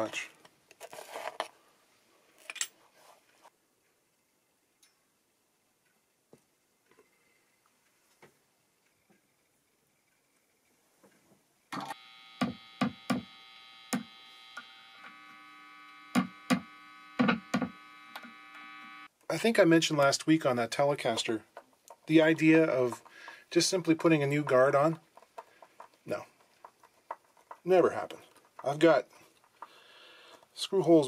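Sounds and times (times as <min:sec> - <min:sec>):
buzzy mains hum: 0:11.7 - 0:19.1
sharp clicks and knocks: 0:16.1 - 0:18.4, 0:21.1 - 0:28.8.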